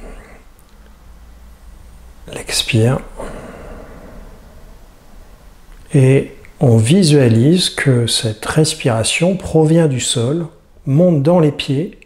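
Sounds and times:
faint room hum: 0.0 - 12.0
man exhaling: 3.1 - 5.2.

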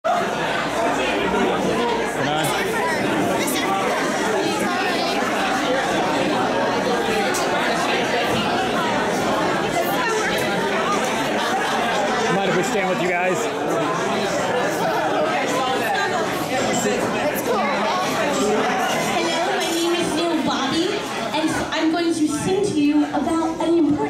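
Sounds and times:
crowd chatter: 0.0 - 24.0.

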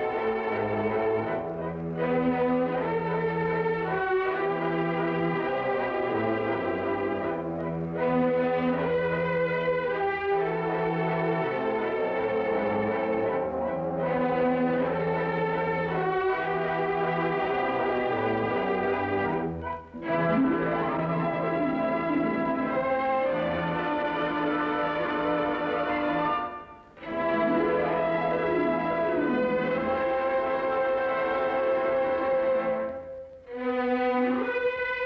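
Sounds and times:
orchestral music: 0.0 - 35.0.

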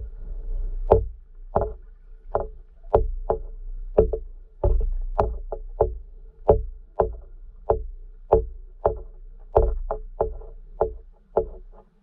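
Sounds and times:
low rumble: 0.0 - 10.8
faint steady hum: 0.0 - 12.0
sharp underwater clicks: 0.8 - 12.0.

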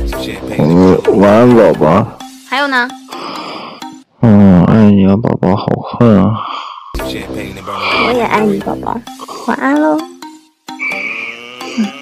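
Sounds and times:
person speaking: 7.6 - 9.6
music with high held note: 7.7 - 12.0.

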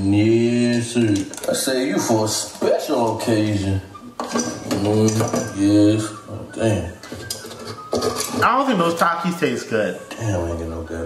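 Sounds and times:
metal utensils clinking on dishes: 4.2 - 6.0, 7.0 - 8.7
person speaking: 8.2 - 11.0.

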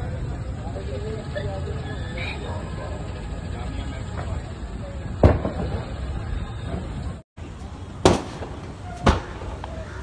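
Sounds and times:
sharp bang: 5.2 - 5.9, 8.0 - 9.6.

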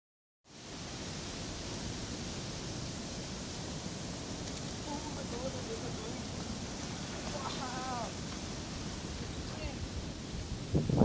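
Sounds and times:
rough sea surf rushing: 0.5 - 11.0.

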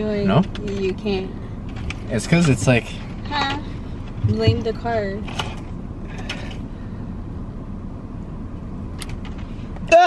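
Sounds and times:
car engine rumble from cabin: 0.0 - 10.0.

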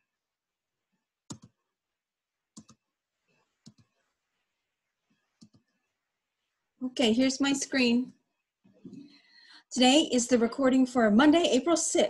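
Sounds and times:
computer mouse clicks: 1.3 - 1.6, 2.5 - 2.8, 3.6 - 4.0, 5.1 - 5.8.

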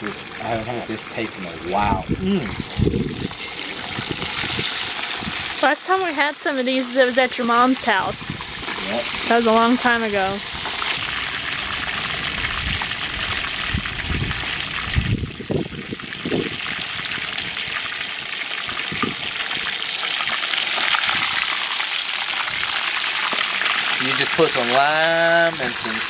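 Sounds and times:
fish deep-frying in oil: 0.0 - 26.0.

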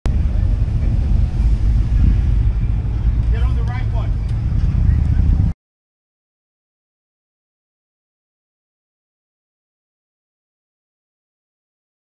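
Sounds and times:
vehicle engine idling: 0.1 - 5.6.

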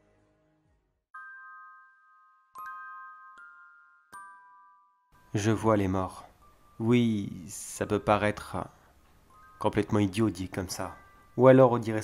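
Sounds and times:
bright chime ringing: 1.2 - 7.5, 9.3 - 12.0
soft background music: 2.6 - 12.0.

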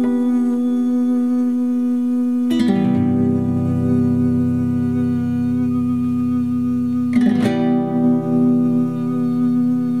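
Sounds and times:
man humming a steady note: 0.0 - 10.0.

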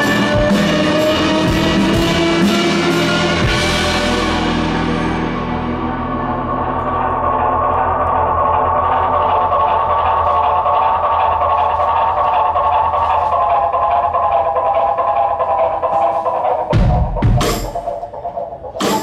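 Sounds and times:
live band drone of held notes: 0.0 - 19.0.

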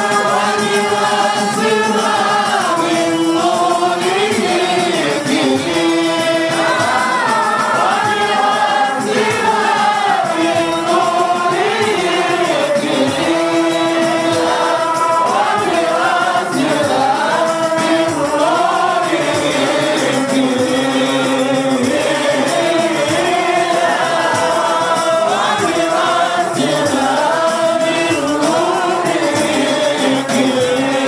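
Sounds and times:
men singing devotional melody: 0.0 - 31.0.

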